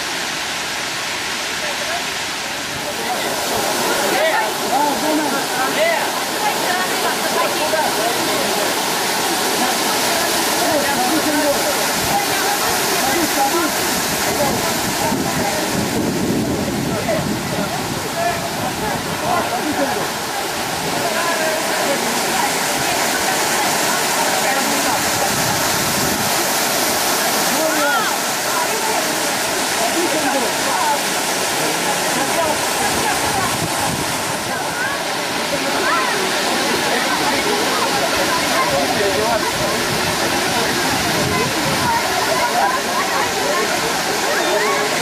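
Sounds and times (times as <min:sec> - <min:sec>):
faint voices talking: 0:00.0 - 0:45.0
waterfall rushing: 0:00.0 - 0:45.0.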